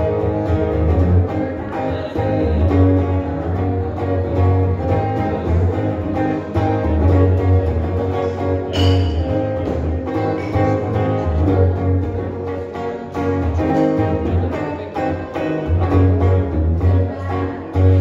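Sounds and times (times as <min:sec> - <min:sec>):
electric guitar rock music: 0:00.0 - 0:18.0.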